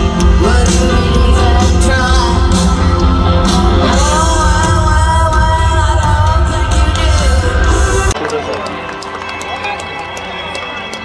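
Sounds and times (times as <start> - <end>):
live rock band playing loud: 0.0 - 8.2
crowd chatter: 0.0 - 11.0
people clapping: 8.1 - 11.0.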